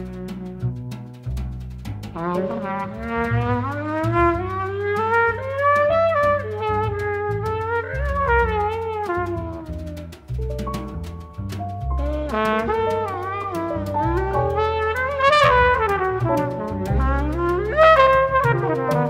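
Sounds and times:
double bass: 0.0s - 19.0s
drums with cymbal ride: 0.0s - 19.0s
horn line gliding: 2.2s - 19.0s.

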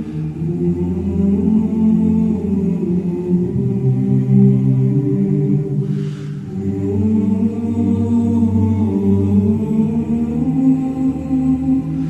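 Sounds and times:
slow choir-like chords: 0.0s - 12.0s.

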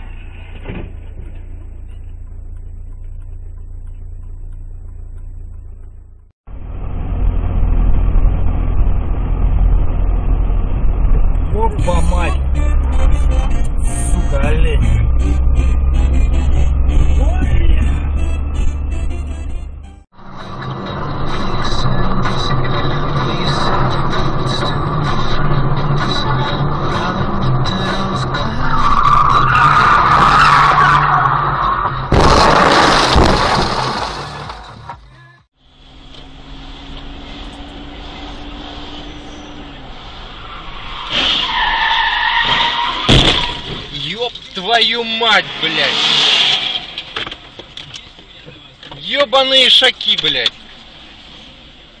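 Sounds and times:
car engine and road noise: 0.0s - 52.0s
tyres skidding: 0.0s - 52.0s
loud crash: 32.0s - 35.0s, 42.4s - 44.0s.

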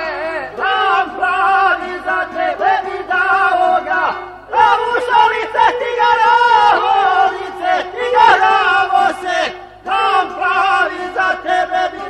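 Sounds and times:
men singing folk song together: 0.0s - 12.0s.

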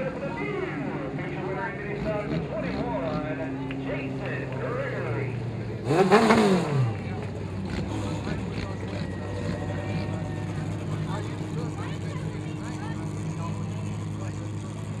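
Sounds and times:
crowd voices chattering: 0.0s - 15.0s
race car engine running: 0.0s - 15.0s.

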